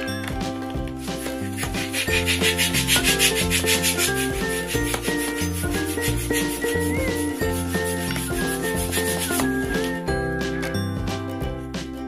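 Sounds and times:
cheerful background music: 0.0 - 12.0
balloon pump pulsing hiss: 0.9 - 9.5.

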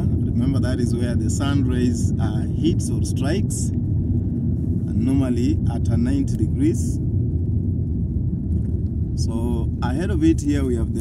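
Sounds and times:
car tyres and engine rumble: 0.0 - 11.0.

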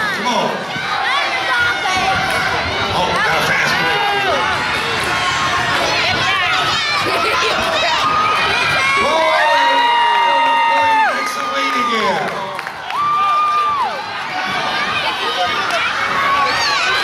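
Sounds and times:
crowd cheering and shouting: 0.0 - 17.0.

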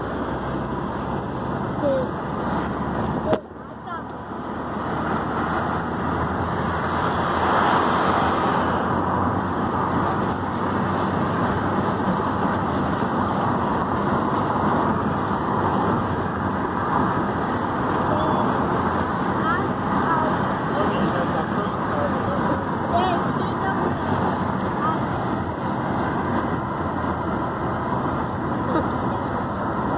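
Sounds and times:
road noise: 0.0 - 29.9
wind through car window: 0.0 - 29.9.

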